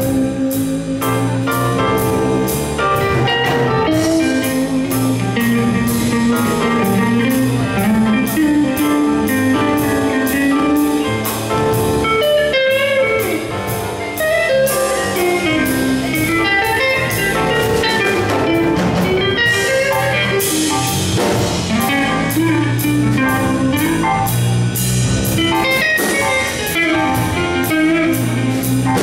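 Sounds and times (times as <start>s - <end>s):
live jazz band playing: 0.0s - 29.0s
steady cymbal beat: 0.0s - 29.0s.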